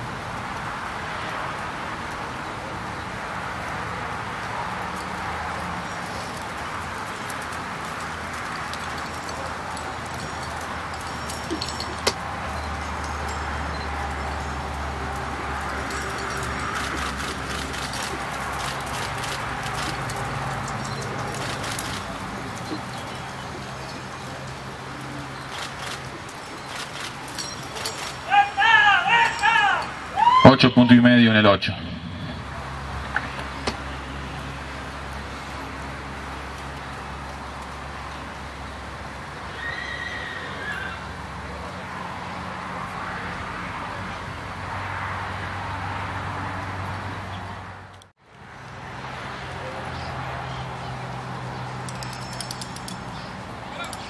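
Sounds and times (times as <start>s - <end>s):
outdoor background noise: 0.0s - 54.0s
man talking: 30.4s - 32.4s.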